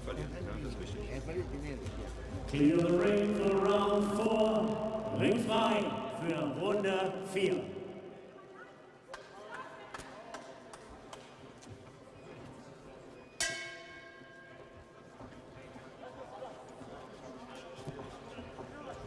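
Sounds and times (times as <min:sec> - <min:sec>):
crowd noise: 0:00.0 - 0:19.0
ringing clang: 0:13.4 - 0:14.9.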